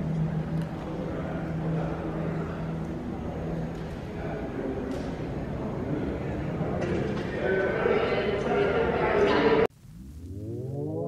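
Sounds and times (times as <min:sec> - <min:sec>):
background noise wash: 0:00.0 - 0:11.0
steady low hum: 0:00.0 - 0:11.0.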